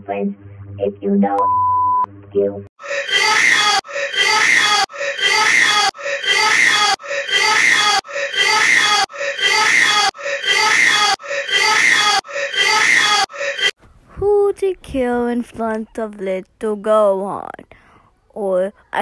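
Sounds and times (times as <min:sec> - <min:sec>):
looped crying: 0:02.8 - 0:13.8.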